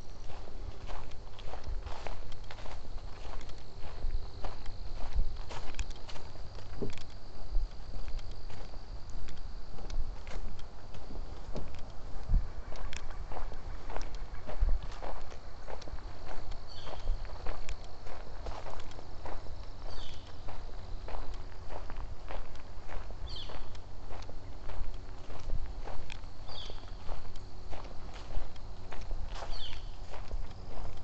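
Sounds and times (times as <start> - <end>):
footsteps on leafy dirt trail: 0.0 - 31.0
bird call: 23.3 - 23.7, 26.5 - 26.9, 29.5 - 29.9.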